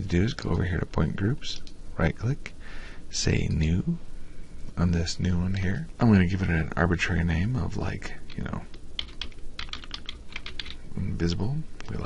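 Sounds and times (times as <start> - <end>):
computer keyboard typing: 8.3 - 10.8.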